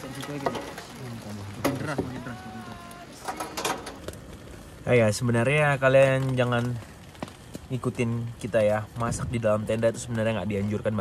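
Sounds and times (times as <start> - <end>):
camp cooking gear clattering: 0.0 - 11.0.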